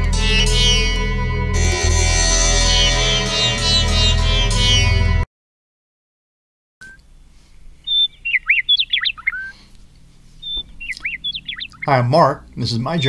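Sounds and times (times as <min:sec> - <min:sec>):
faint steady hum: 0:06.8 - 0:13.0
small bird chirping: 0:06.8 - 0:13.0.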